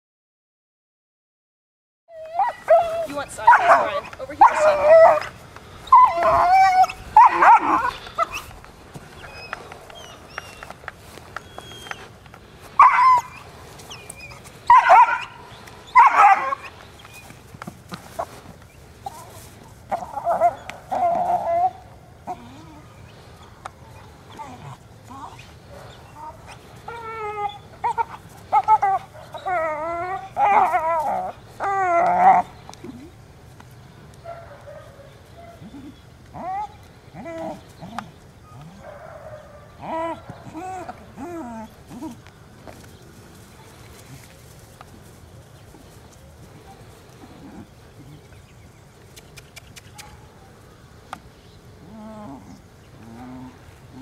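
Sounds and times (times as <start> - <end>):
puppy yipping and whining: 2.1 - 8.6, 9.2 - 10.7, 11.4 - 12.1, 12.8 - 17.2, 23.9 - 32.7
puppy barking: 2.4 - 5.3, 5.9 - 8.4, 14.7 - 15.4, 16.0 - 16.7.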